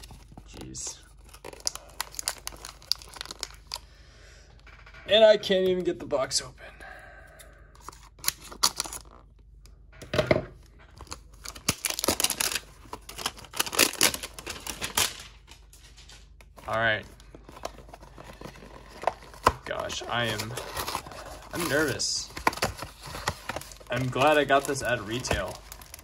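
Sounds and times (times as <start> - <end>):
shrink-wrap tearing and crinkling: 0.0 - 3.8, 7.8 - 9.3, 10.9 - 26.0.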